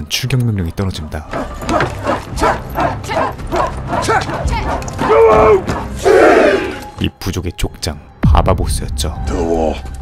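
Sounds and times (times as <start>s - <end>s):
men shouting sharp barking shouts: 1.3s - 6.9s.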